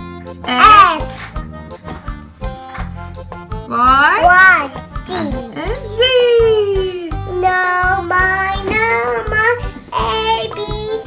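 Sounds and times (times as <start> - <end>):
upbeat children's music: 0.0 - 11.0
young child singing: 7.3 - 11.0.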